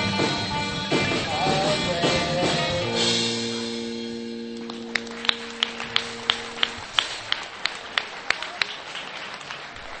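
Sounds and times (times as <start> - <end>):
electric guitar chord ringing: 1.6 - 7.3
hands clapping: 4.6 - 10.0.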